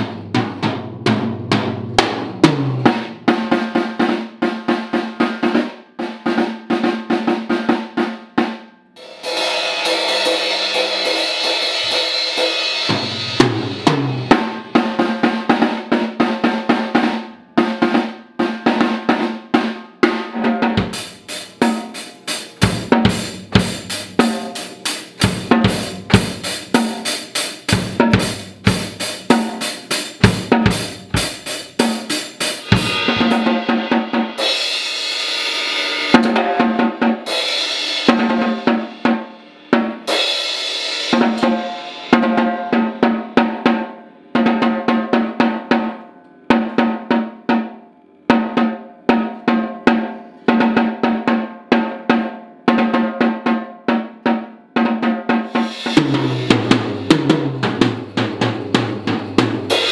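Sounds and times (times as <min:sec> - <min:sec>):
acoustic drum kit: 0:00.0 - 0:59.9
bass drum hits: 0:32.6 - 0:33.7, 0:55.7 - 0:59.6.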